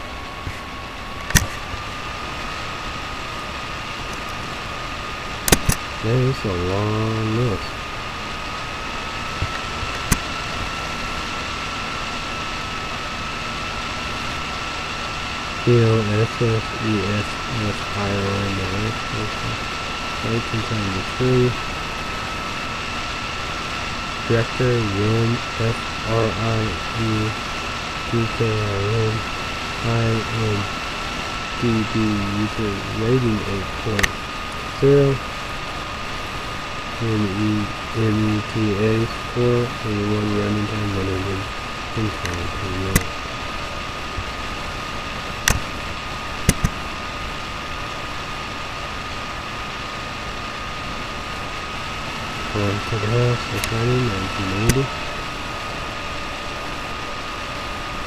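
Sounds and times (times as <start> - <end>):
steady high-pitched whine: 0.0 - 58.0
sharp clicks: 5.5 - 5.9, 45.4 - 45.7, 46.5 - 46.8
man mumbling: 6.0 - 7.8, 15.7 - 19.6, 20.2 - 21.6, 24.3 - 27.4, 28.1 - 29.2, 29.8 - 30.7, 31.6 - 35.2, 37.0 - 43.1, 52.5 - 54.9.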